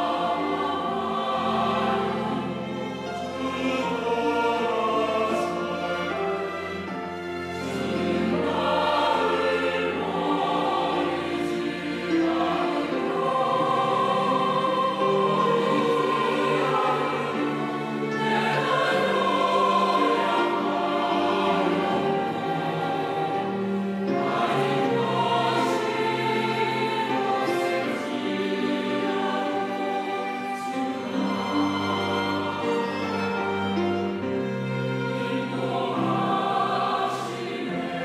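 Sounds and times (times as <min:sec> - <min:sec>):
choir singing a hymn: 0:00.0 - 0:38.0
string ensemble: 0:00.0 - 0:38.0.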